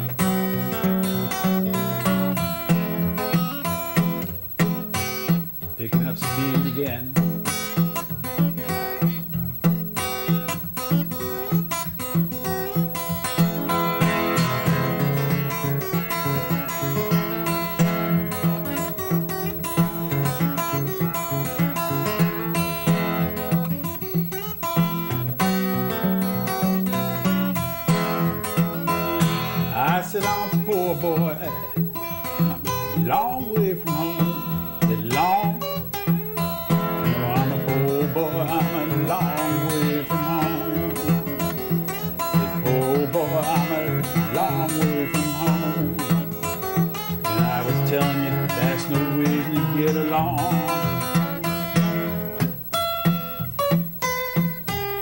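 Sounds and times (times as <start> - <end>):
acoustic guitar playing: 0.0 - 55.0.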